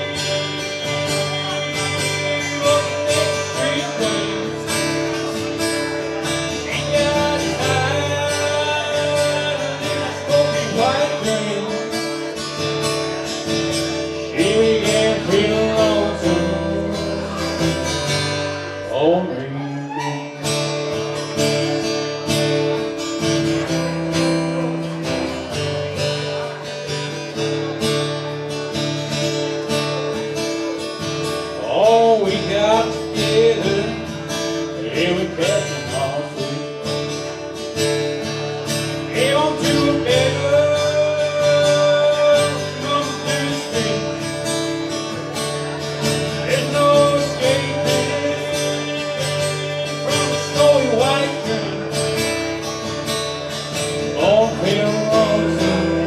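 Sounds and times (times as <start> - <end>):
man singing: 0.0 - 20.5, 22.4 - 27.2, 31.3 - 37.4, 38.6 - 56.0
acoustic guitar strumming: 0.0 - 56.0.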